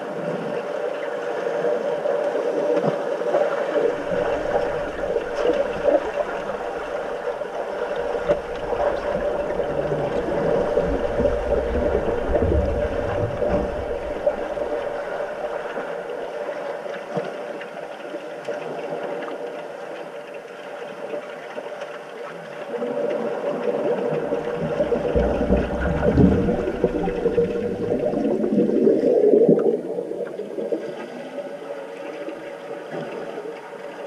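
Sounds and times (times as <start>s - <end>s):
bubbling and churning water: 0.0s - 34.0s
underwater hum: 0.0s - 34.0s
deep rumble: 3.8s - 15.8s, 24.1s - 29.1s.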